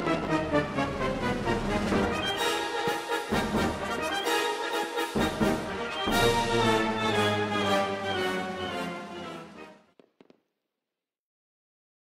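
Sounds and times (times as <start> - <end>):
orchestral background music: 0.0 - 10.0.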